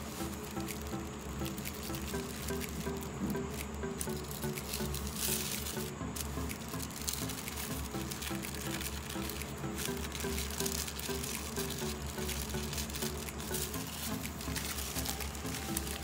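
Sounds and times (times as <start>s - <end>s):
background music: 0.0s - 16.0s
paper rustling and crinkling: 4.0s - 16.0s.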